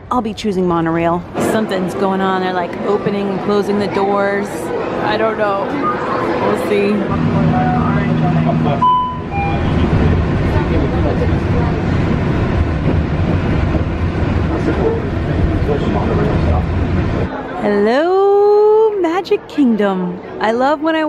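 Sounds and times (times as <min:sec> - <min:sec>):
train rumbling along track: 0:00.0 - 0:17.3
monorail train humming: 0:00.0 - 0:21.0.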